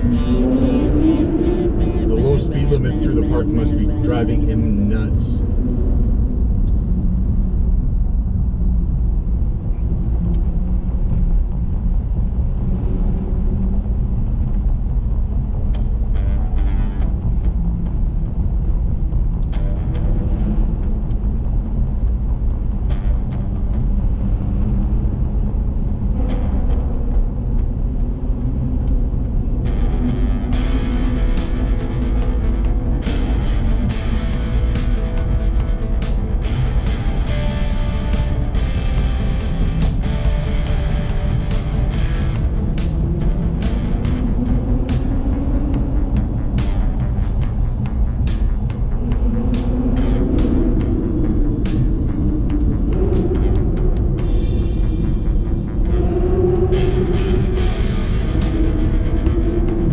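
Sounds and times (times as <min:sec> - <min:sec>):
car driving rumble: 0:00.0 - 0:59.9
music: 0:00.0 - 0:59.9.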